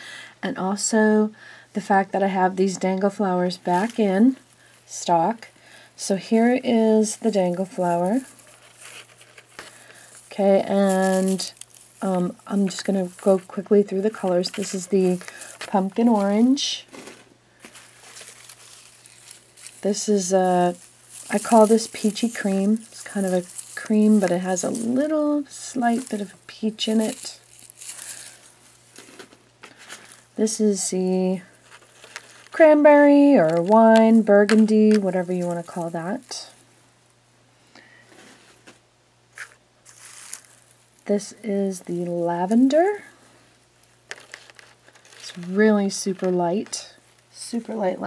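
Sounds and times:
low steady background hum: 0.0s - 48.0s
soft handling rustles: 2.8s - 37.2s, 37.8s - 48.0s.

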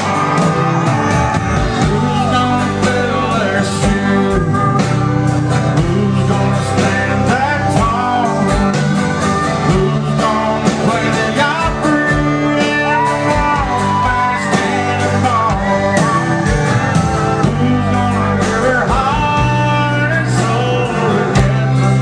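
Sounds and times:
country band playing: 0.0s - 22.0s
sliding guitar lead line: 0.0s - 22.0s
steady drum beat: 0.0s - 22.0s.

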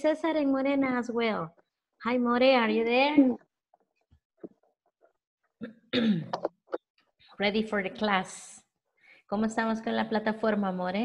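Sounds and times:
woman clearing her throat: 5.6s - 6.6s.

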